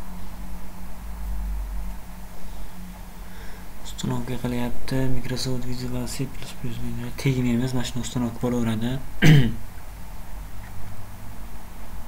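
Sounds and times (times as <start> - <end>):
man speaking: 3.8 - 9.1
man clearing his throat: 9.2 - 9.6.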